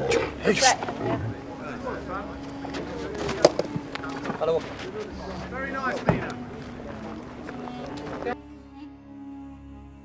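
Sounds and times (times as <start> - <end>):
distant people talking: 0.0 - 8.4
steady low hum: 0.0 - 10.0.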